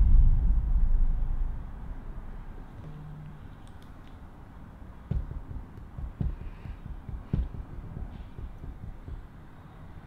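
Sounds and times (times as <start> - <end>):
heartbeat-like dull thumps: 0.0 - 2.2, 5.1 - 9.6.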